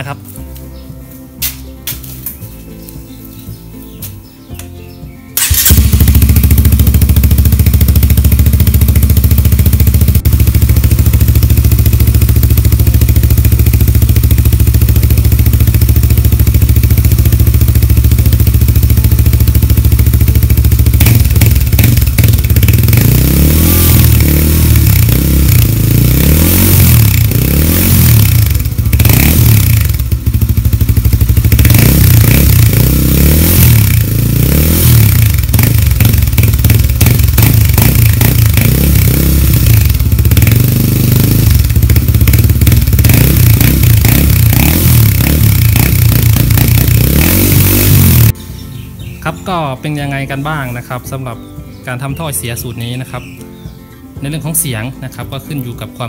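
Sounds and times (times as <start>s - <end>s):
motorcycle engine idling: 1.6s - 49.3s
motorcycle throttle blips: 4.0s - 48.4s.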